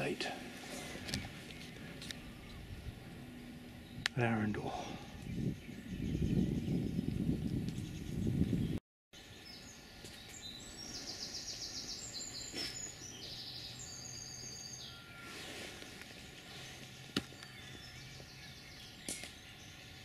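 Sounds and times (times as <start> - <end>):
faint outdoor background noise: 0.0 - 6.0, 9.2 - 20.0
songbirds singing: 0.0 - 20.0.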